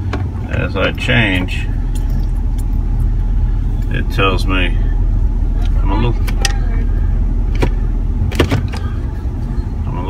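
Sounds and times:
engine low rumble: 0.0s - 10.0s.

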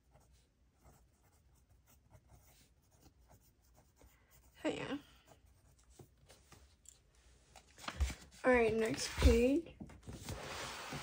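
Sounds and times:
pen scratching on paper: 0.0s - 6.2s.

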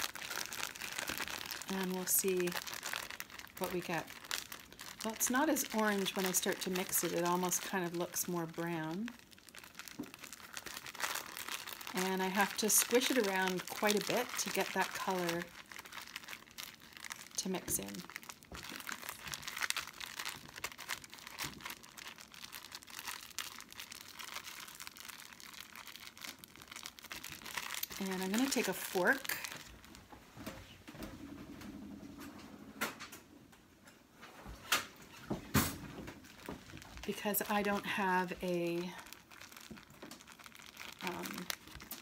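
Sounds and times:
plastic bag crinkling: 0.0s - 30.1s, 34.9s - 42.0s.

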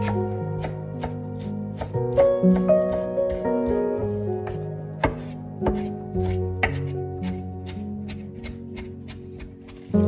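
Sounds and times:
knife chopping on wooden board: 0.0s - 9.9s
soft background music: 0.0s - 10.0s.

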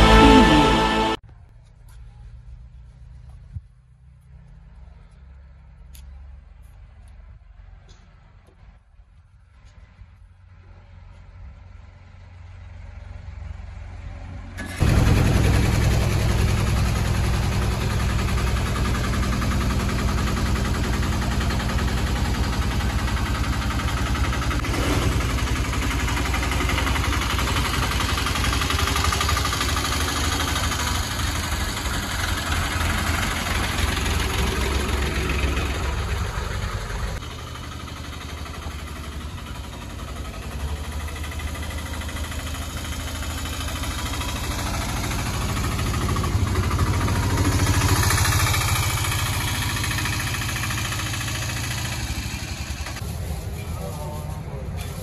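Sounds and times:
auto-rickshaw engine idling: 0.0s - 55.0s
auto-rickshaw driving past: 9.8s - 55.0s.

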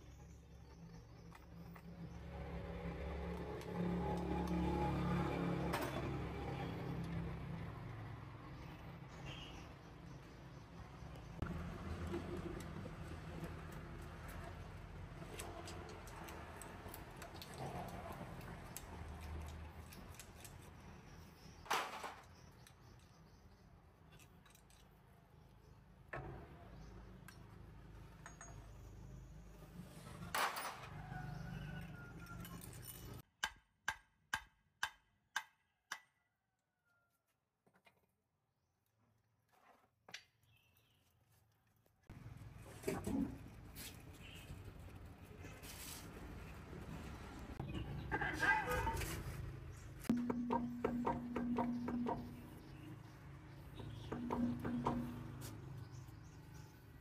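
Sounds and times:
pliers and steel parts clinking: 24.1s - 25.0s, 32.2s - 33.2s.

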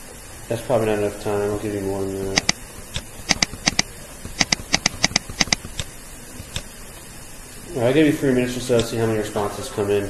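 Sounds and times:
computer mouse clicking: 2.4s - 6.7s.

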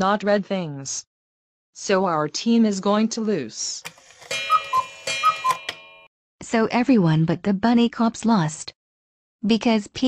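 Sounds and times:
clock ticking: 3.9s - 6.0s
steady ringing tone: 3.9s - 6.1s.

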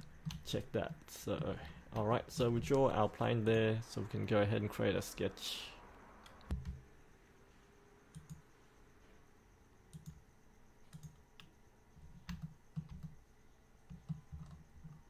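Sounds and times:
computer mouse clicks: 8.1s - 8.4s, 9.9s - 10.2s, 10.9s - 11.5s.

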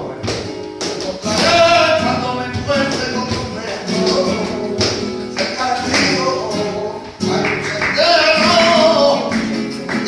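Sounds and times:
man singing: 0.0s - 10.0s
nylon-string guitar: 0.0s - 10.0s
shoes tapping on stage: 0.0s - 10.0s
hand-clapping: 0.2s - 1.7s, 2.5s - 6.5s, 7.1s - 10.0s.

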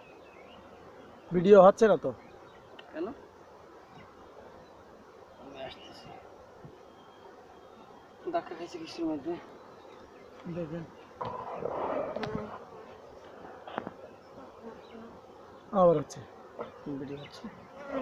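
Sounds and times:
bees buzzing: 0.0s - 18.0s
bee passing close by: 2.2s - 18.0s.

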